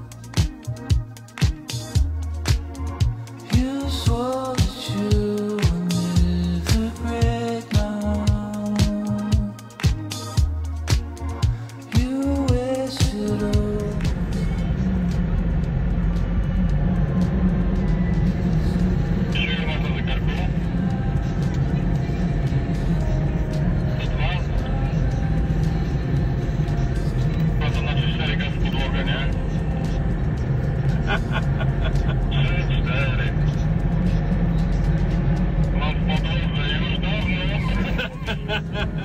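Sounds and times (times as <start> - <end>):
music: 0.0 - 39.0
road and engine rumble in car: 10.5 - 39.0
indistinct voices: 11.4 - 39.0.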